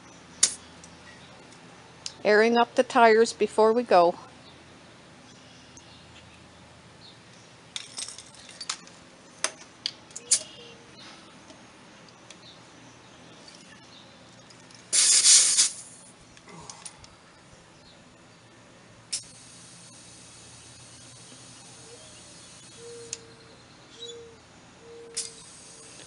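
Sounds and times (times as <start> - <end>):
air hissing into tire: 14.9 - 16.1, 19.1 - 23.2, 25.2 - 26.0.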